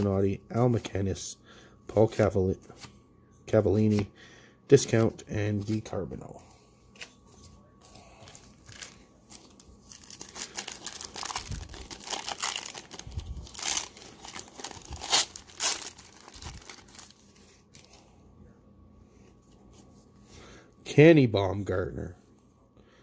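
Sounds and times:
wrapper ripping and crinkling: 8.6 - 17.2.

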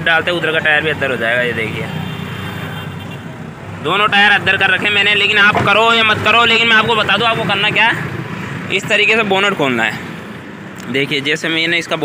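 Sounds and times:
man speaking: 0.0 - 2.1, 3.8 - 10.2, 10.8 - 12.0.

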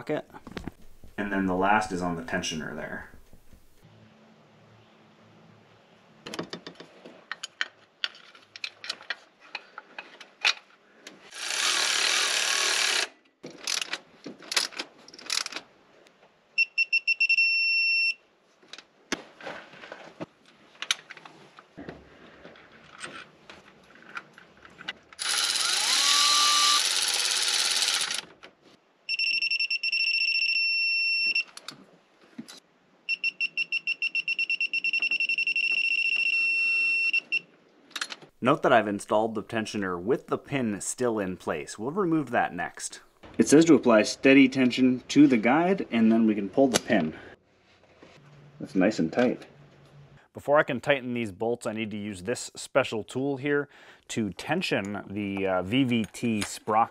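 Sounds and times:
power tool running: 11.3 - 13.1, 25.2 - 28.2
torque wrench beeping: 25.2 - 28.2.

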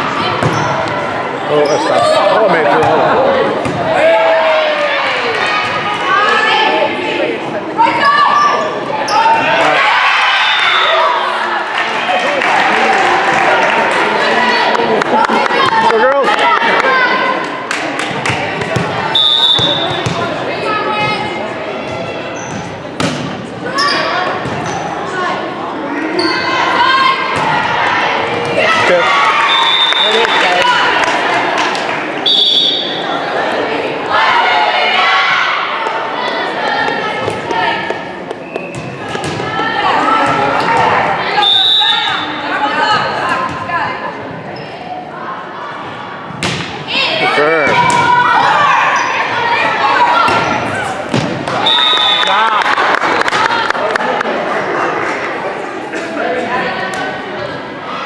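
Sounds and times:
players and spectators shouting: 0.0 - 17.7, 23.6 - 37.9, 39.0 - 44.1, 44.9 - 58.0.

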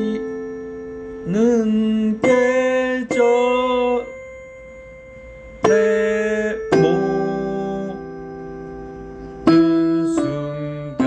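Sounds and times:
piano melody: 0.0 - 11.0.

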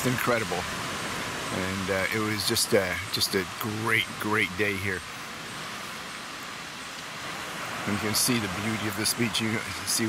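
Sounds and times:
surf washing onto sandy beach: 0.0 - 10.0.

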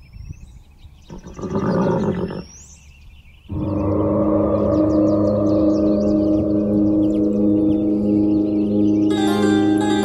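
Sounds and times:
birds chirping faintly: 0.0 - 10.0.

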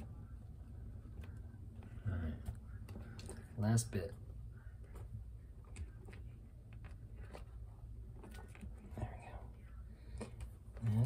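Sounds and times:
soft handling noise: 0.0 - 11.0.

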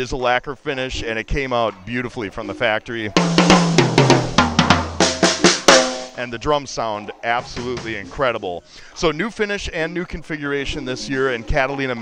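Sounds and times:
drum run around the toms: 3.2 - 6.2, 7.4 - 8.3
floor tom ringing low: 3.2 - 6.2.

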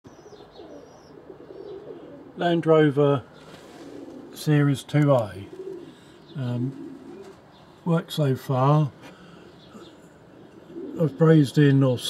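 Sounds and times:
low wavering bird calls: 0.1 - 2.6, 5.4 - 7.9, 9.1 - 11.5.

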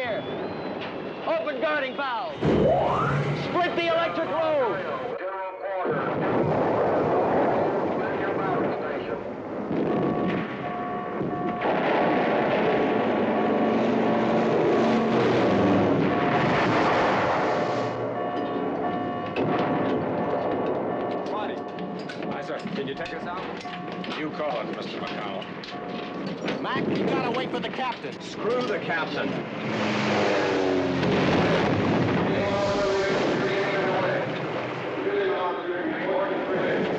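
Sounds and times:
dense continuous din: 0.0 - 36.9
bomb explosions: 2.3 - 4.3, 5.9 - 27.8, 28.9 - 35.2
gunfire: 9.7 - 14.4, 19.3 - 21.0.

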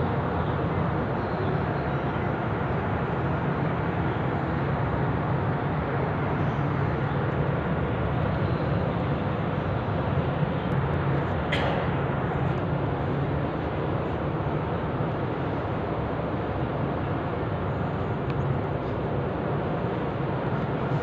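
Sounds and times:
indoor room ambience rumble and hiss: 0.0 - 21.0.

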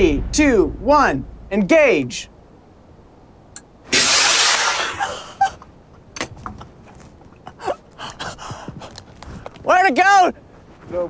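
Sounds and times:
rocket motor rushing hiss: 3.9 - 5.4.

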